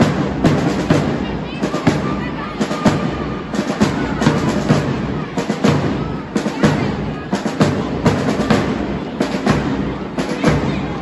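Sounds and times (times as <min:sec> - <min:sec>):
crowd chatter: 0:00.0 - 0:11.0
marching drums beating: 0:00.0 - 0:11.0.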